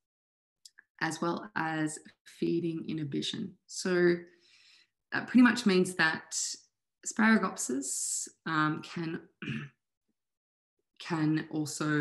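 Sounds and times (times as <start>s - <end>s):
woman clearing her throat: 9.4s - 9.7s.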